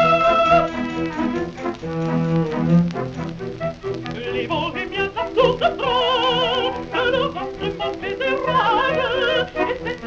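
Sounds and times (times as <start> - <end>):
woman singing with orchestra: 0.0 - 1.0, 4.2 - 10.0.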